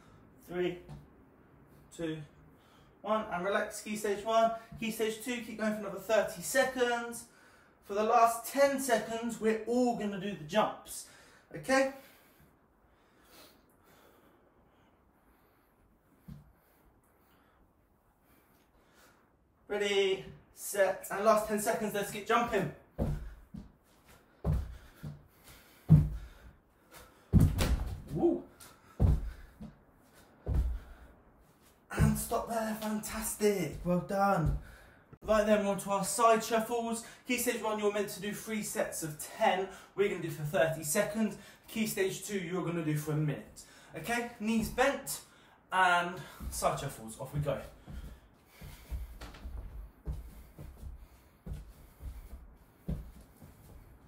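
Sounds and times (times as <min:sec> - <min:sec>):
feet thudding on wooden floor: 0:23.0 - 0:29.8, 0:30.4 - 0:31.1, 0:31.9 - 0:32.3, 0:33.7 - 0:34.8, 0:47.8 - 0:54.0.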